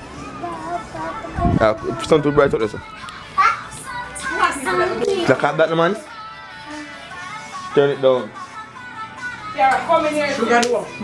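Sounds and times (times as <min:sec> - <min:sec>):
music playing: 0:00.0 - 0:11.0
children talking excitedly: 0:00.4 - 0:05.6.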